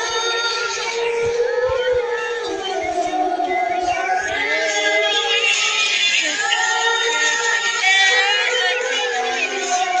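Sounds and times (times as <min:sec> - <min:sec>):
children singing pop song: 0:00.0 - 0:10.0
karaoke backing track: 0:00.0 - 0:10.0.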